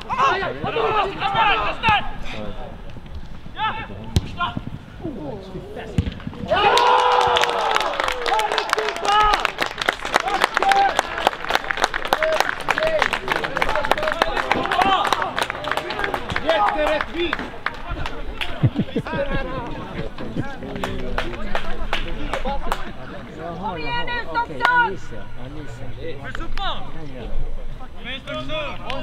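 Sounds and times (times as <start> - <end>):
people shouting: 6.5 - 8.4.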